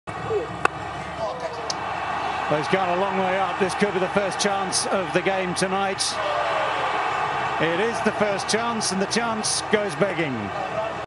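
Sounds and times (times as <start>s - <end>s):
stadium crowd noise: 0.1s - 11.0s.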